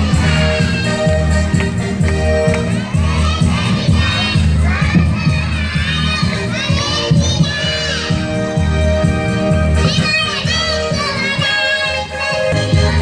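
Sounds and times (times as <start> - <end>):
music with bass beat: 0.0 - 11.1
children shouting and cheering: 0.0 - 13.0.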